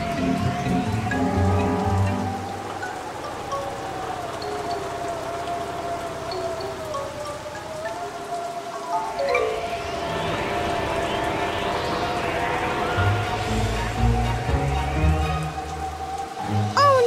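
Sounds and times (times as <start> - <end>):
rain falling: 0.0 - 17.0.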